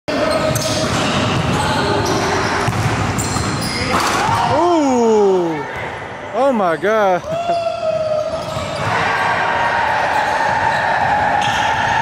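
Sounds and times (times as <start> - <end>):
basketballs bouncing on hardwood: 2.6 - 3.6.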